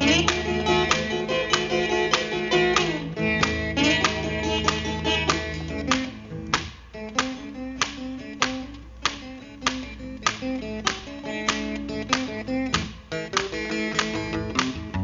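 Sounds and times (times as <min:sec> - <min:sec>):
blues guitar riff: 0:00.0 - 0:15.0
sharp percussive beat: 0:00.0 - 0:15.0.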